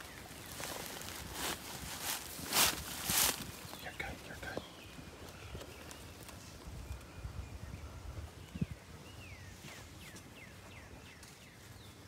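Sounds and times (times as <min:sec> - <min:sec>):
faint birdsong: 0:00.0 - 0:12.0.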